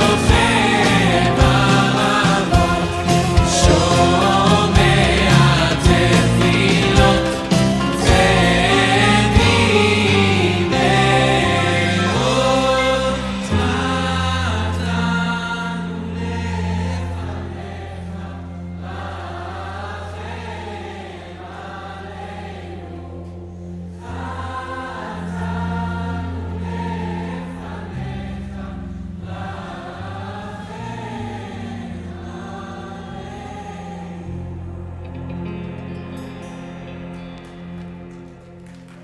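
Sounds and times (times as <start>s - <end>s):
group singing worship song: 0.0s - 36.1s
band with bass and keyboard: 0.0s - 39.0s.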